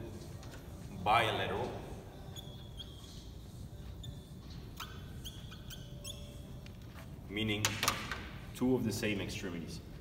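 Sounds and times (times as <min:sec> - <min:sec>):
whiteboard marker squeaking: 0:02.2 - 0:07.1.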